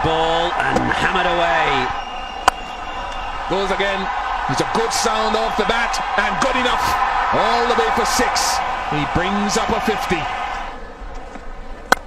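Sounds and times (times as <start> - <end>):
crowd noise: 0.0 - 12.0
cricket bat striking ball: 2.4 - 2.8.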